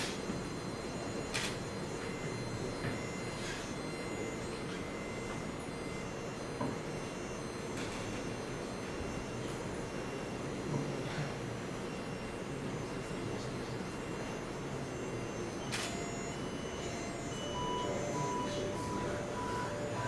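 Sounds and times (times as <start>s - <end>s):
faint steady tones: 0.0s - 20.0s.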